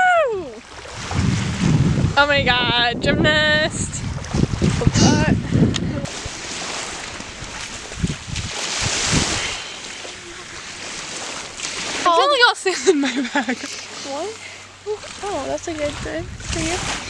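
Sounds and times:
small waves washing on shore: 0:00.0 - 0:17.0
wind buffeting microphone: 0:00.1 - 0:12.0, 0:13.9 - 0:17.0.

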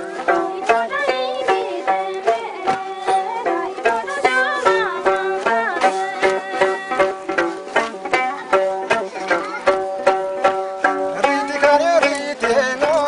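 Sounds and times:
sung melody with slides: 0:00.0 - 0:13.0.

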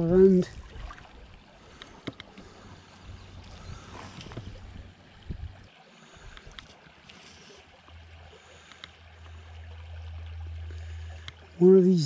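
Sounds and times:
wind rumbling on microphone: 0:00.0 - 0:01.5, 0:02.5 - 0:06.7
shallow stream flowing: 0:00.0 - 0:12.0
faint light ticks: 0:01.7 - 0:02.4, 0:06.3 - 0:07.2, 0:08.6 - 0:09.0, 0:11.2 - 0:11.4.

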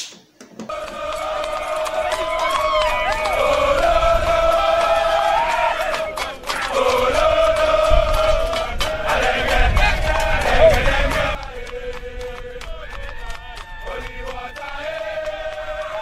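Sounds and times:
soldiers chanting in unison: 0:00.7 - 0:16.0.

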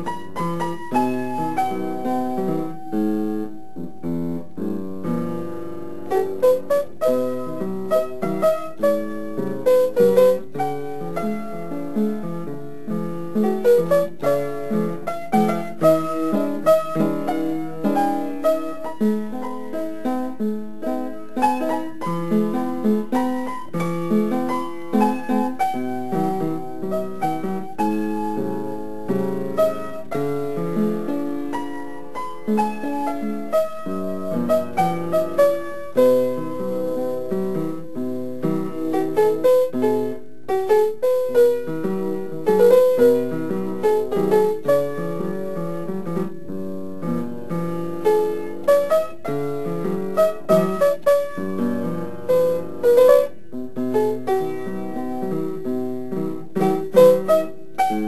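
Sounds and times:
piano melody over chords: 0:00.0 - 0:58.0.

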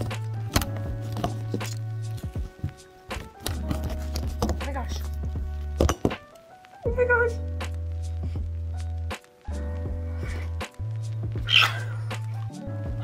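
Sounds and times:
music with deep bass: 0:06.9 - 0:13.0.

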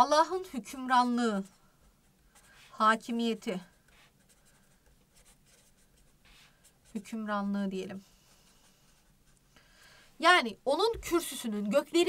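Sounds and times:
marker scratching on paper: 0:00.7 - 0:09.5.

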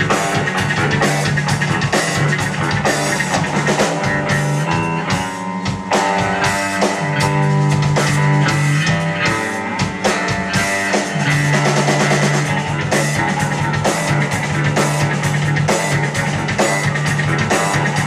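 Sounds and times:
drum and cymbal hits: 0:00.0 - 0:18.0
electric bass guitars: 0:00.0 - 0:18.0.

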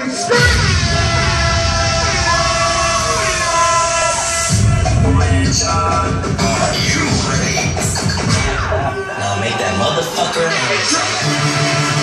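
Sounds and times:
drum and bass music: 0:00.0 - 0:12.0.

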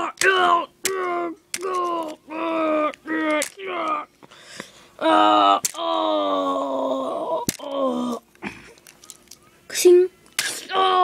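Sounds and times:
child groaning: 0:00.0 - 0:04.1, 0:05.0 - 0:08.2, 0:10.5 - 0:11.0.

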